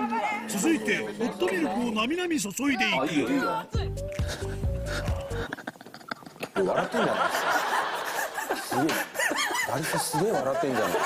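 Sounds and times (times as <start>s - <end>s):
men speaking: 0.1s - 5.7s, 6.3s - 11.0s
men laughing: 4.2s - 11.0s.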